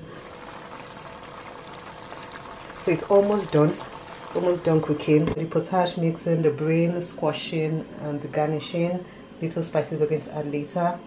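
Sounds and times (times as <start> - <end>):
meat simmering in a pan: 0.0 - 5.3.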